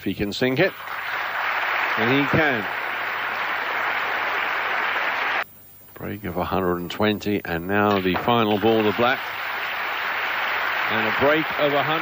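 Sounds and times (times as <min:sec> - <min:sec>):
audience applauding: 0:00.6 - 0:05.4, 0:07.9 - 0:12.0.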